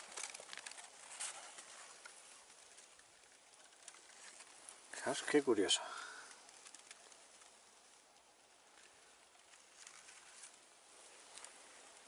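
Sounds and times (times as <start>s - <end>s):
soft rustle: 0.0s - 12.0s.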